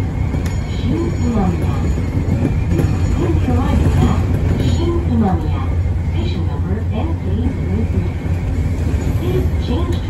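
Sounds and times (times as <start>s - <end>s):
train rumbling on track: 0.0s - 10.0s.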